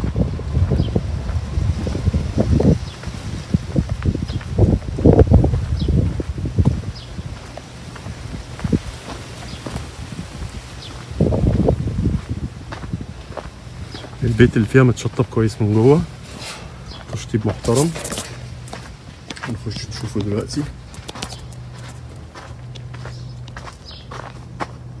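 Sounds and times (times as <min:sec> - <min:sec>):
footsteps on sandy dirt path: 0:00.0 - 0:25.0
low microphone rumble: 0:00.0 - 0:25.0.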